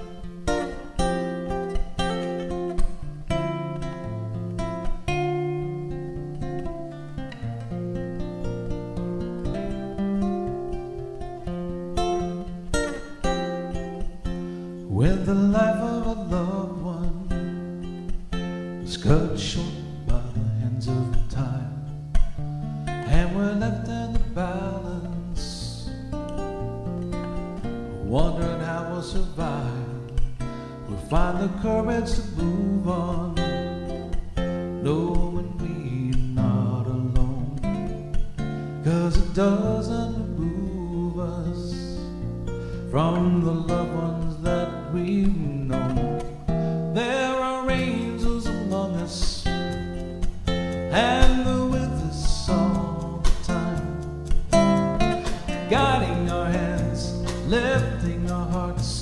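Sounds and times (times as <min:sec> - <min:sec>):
strummed acoustic guitar: 0:00.0 - 0:59.0
electric bass: 0:18.9 - 0:29.2, 0:49.3 - 0:59.0.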